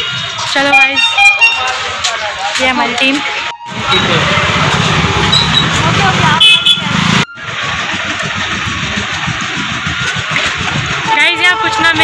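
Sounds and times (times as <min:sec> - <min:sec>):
busy street traffic: 0:00.0 - 0:12.0.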